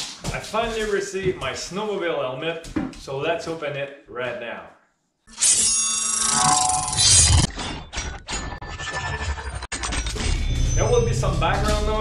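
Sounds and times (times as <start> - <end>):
choppy sound-effect music: 8.3 - 12.0.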